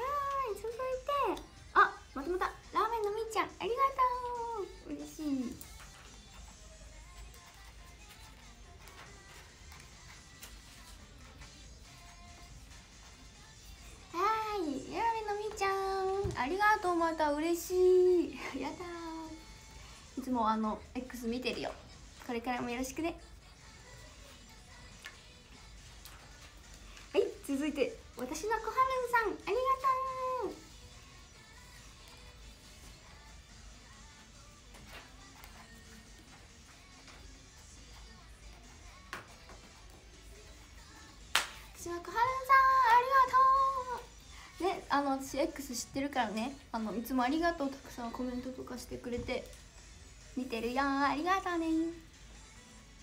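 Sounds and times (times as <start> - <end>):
faint background music: 0.0 - 53.0.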